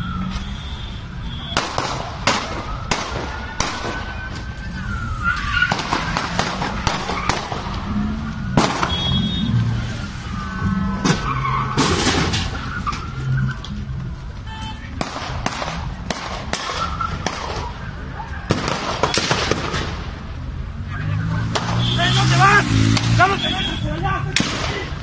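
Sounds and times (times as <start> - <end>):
traffic noise: 0.0 - 25.0
gunshots: 1.5 - 4.1, 5.6 - 7.8, 8.5 - 9.2, 15.0 - 17.7, 18.5 - 20.1, 24.3 - 25.0
man shouting: 21.8 - 25.0.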